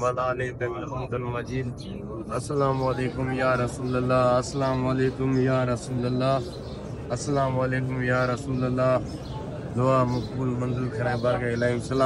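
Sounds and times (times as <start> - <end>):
man chanting: 0.0 - 6.5, 7.1 - 9.1.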